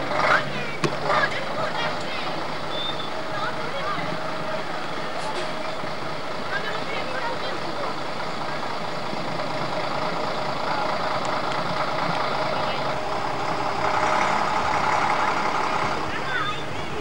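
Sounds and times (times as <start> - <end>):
diesel truck engine running: 0.0 - 17.0.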